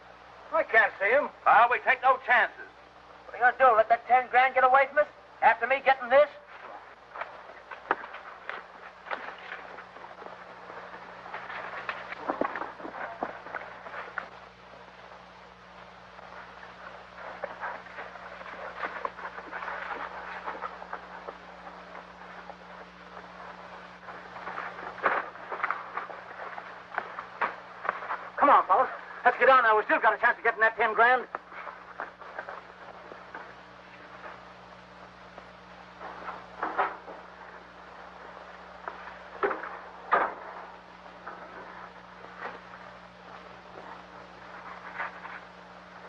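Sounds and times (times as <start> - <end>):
old film soundtrack hum and hiss: 0.0 - 46.0
horse hoofbeats: 16.2 - 28.6.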